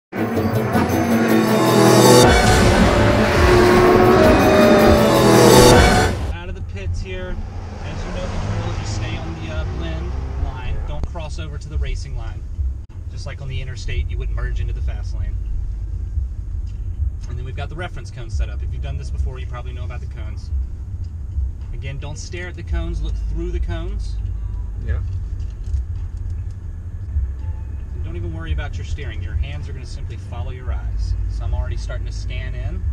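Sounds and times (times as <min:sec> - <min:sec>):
car engine and tyres droning: 0:00.1 - 0:32.9
road noise: 0:00.1 - 0:32.9
man talking: 0:06.3 - 0:12.4, 0:13.1 - 0:15.4, 0:28.0 - 0:32.8.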